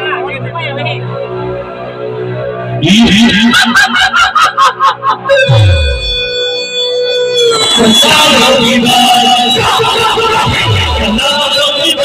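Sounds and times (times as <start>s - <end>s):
held high note: 5.4s - 6.9s
deep tone sliding down: 5.5s - 6.5s.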